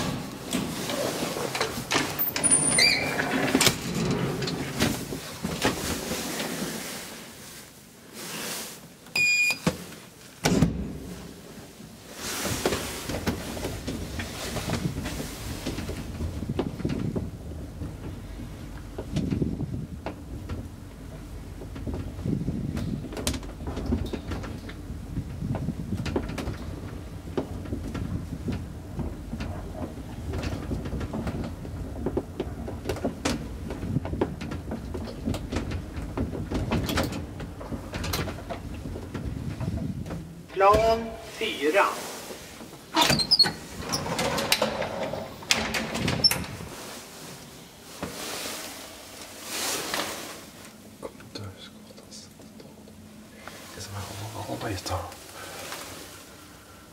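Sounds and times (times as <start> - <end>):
elevator low rumble: 0.0 - 7.6, 10.8 - 56.9
elevator button beep: 9.2 - 9.6
elevator gate clicks and rattles: 43.0 - 46.6.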